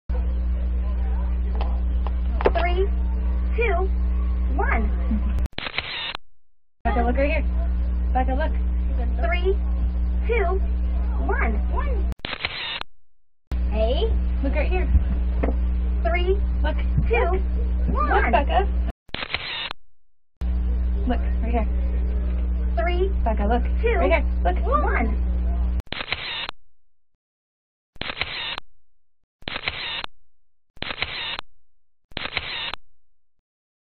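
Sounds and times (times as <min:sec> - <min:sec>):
low electrical hum: 0:00.1 - 0:06.2, 0:06.9 - 0:12.8, 0:13.5 - 0:19.7, 0:20.4 - 0:26.4
camera shutter click and hiss: 0:05.6 - 0:06.2, 0:12.2 - 0:12.8, 0:19.1 - 0:19.7, 0:25.9 - 0:26.5, 0:28.0 - 0:28.6, 0:29.5 - 0:30.1, 0:30.8 - 0:31.4, 0:32.2 - 0:32.8.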